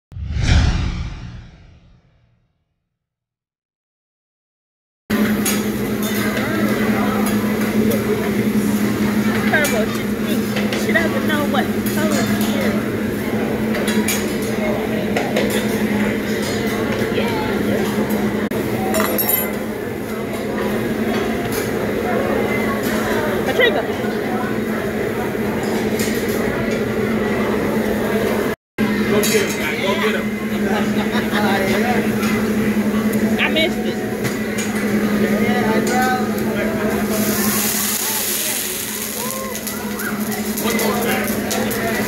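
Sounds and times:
low hum: 0:00.1 - 0:02.3
whoosh with deep rumble: 0:00.1 - 0:02.3.

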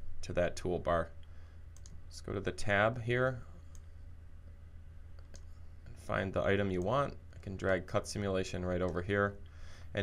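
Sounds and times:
faint mouse clicks: 0:01.2 - 0:02.0, 0:03.6 - 0:03.9, 0:05.1 - 0:06.0, 0:08.8 - 0:09.1.

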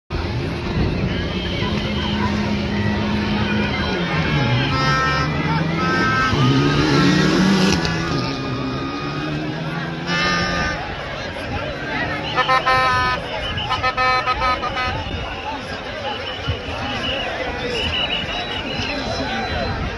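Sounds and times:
crowd shouting: 0:00.1 - 0:19.9
car engine revving: 0:01.2 - 0:11.0.

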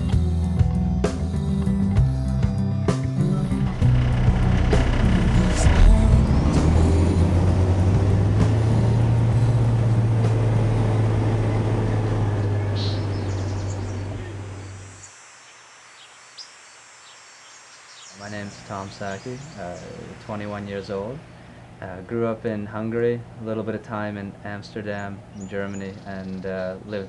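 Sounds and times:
background music: 0:00.0 - 0:14.7
diesel engine running: 0:02.0 - 0:14.9.

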